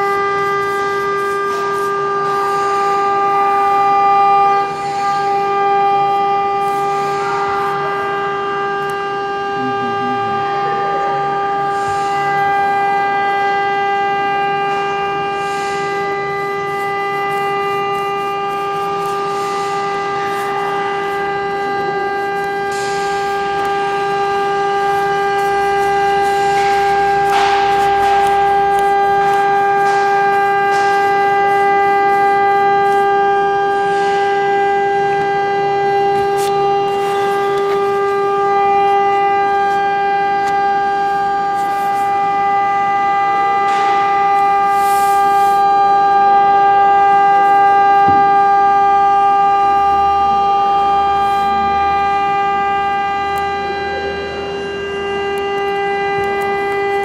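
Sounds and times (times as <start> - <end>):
loud buzzy droning tone: 0.0 - 57.0.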